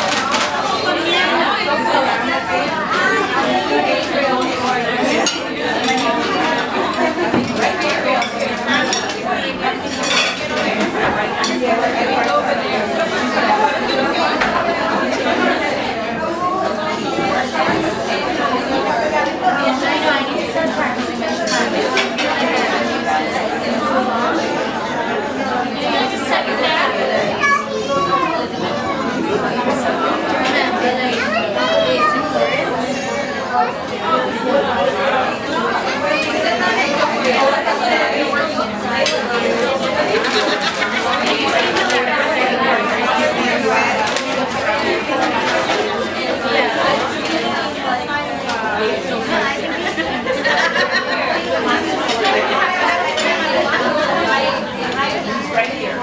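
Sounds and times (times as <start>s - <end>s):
women's voices chattering: 0.0s - 56.0s.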